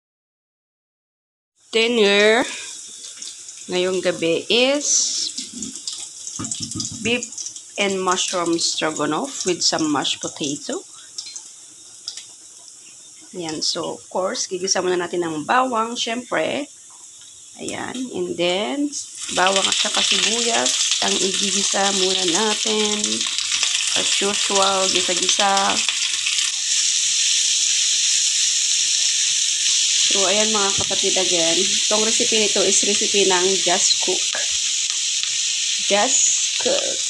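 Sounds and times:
garlic sizzling in oil: 1.6 - 37.0
small crackles: 5.1 - 8.5, 10.2 - 13.7, 19.2 - 31.0.

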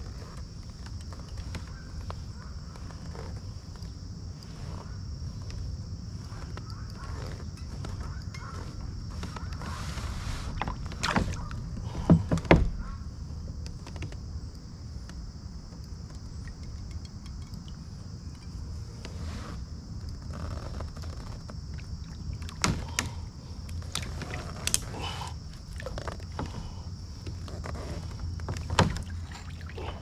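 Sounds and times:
gear rattling on plastic kayak: 0.0 - 17.6, 18.2 - 30.0.

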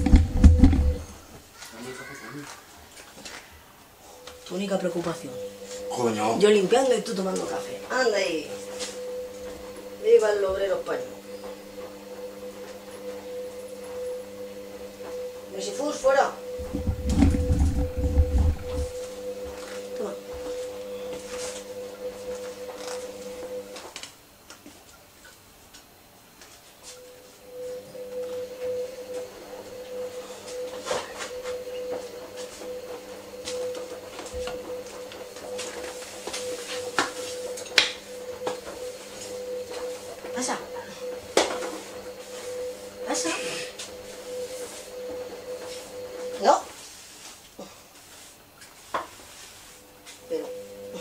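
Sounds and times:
steady hum: 0.0 - 1.4, 4.1 - 23.9.

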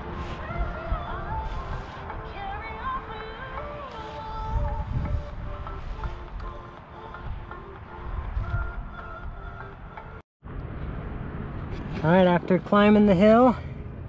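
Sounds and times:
wind rumble on microphone: 0.0 - 14.0.

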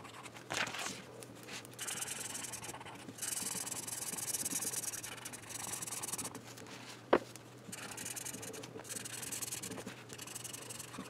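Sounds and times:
pen scratching on paper: 1.8 - 6.4, 7.7 - 11.0.

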